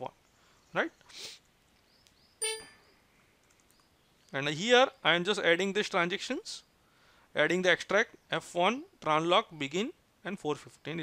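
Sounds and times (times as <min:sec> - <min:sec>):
soft breathy hiss: 0:00.3 - 0:01.8, 0:06.6 - 0:07.4
short ding: 0:02.4 - 0:02.9.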